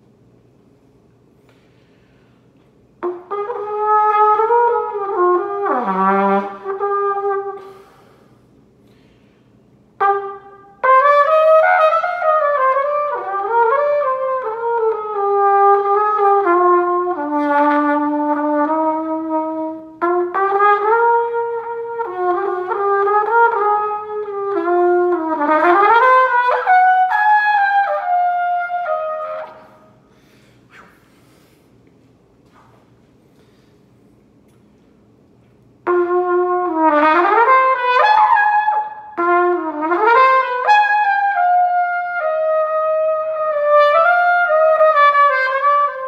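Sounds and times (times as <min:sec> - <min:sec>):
solo trumpet playing: 0:03.0 - 0:08.0, 0:09.9 - 0:30.0, 0:35.8 - 0:46.0.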